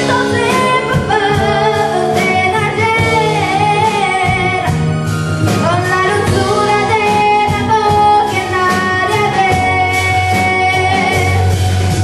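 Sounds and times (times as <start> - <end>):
girl singing into microphone: 0.0 - 11.6
live band playing: 0.0 - 12.0.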